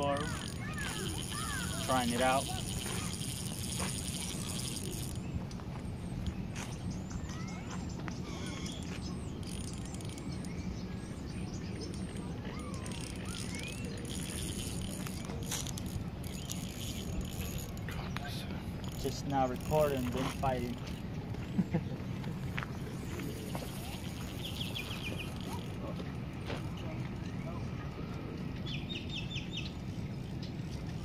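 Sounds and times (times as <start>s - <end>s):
low outdoor rumble: 0.0s - 31.0s
small birds chirping: 0.0s - 31.0s.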